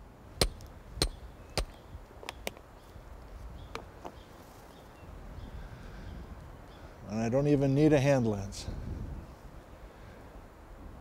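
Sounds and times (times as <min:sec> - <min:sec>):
rock hammer striking rock: 0:00.4 - 0:01.8.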